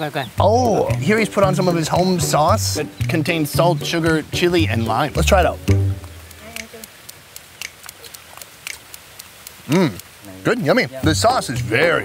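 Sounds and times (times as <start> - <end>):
sharp mouth clicks: 5.6 - 10.3
person chewing: 5.9 - 10.1.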